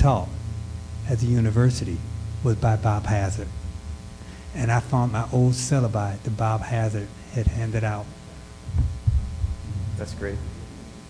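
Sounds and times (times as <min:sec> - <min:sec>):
electrical hum: 0:00.0 - 0:11.0
low thumps: 0:08.6 - 0:11.0.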